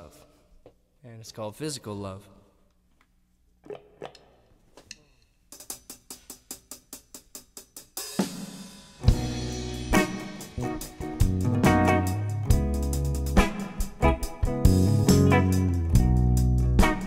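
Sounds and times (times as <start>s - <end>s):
rock trio playing: 8.1s - 17.0s.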